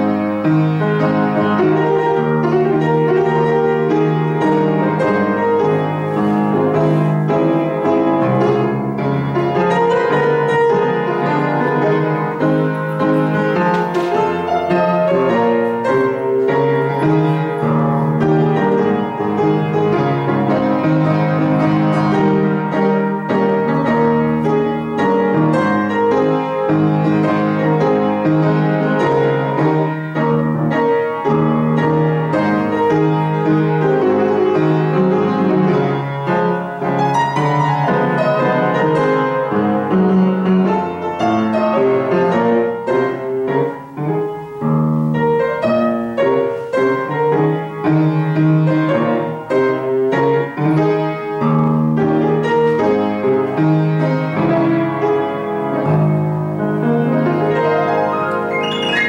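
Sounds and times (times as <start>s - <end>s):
piano playing hymn chords: 0.0s - 59.0s.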